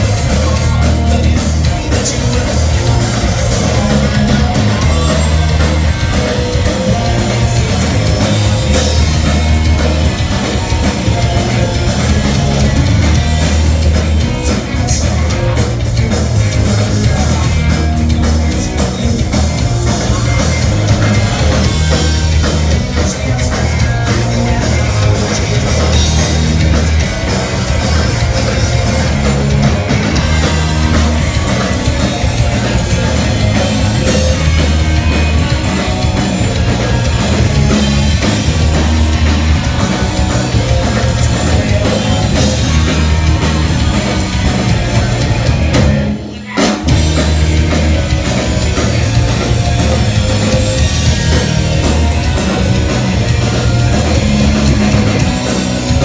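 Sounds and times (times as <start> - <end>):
punk rock band playing: 0.0 - 56.0.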